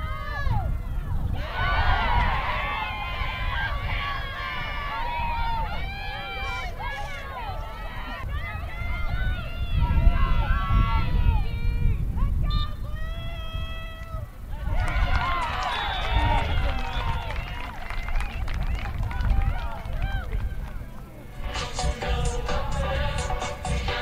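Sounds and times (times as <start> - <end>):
steady low rumble: 18.2 - 24.0.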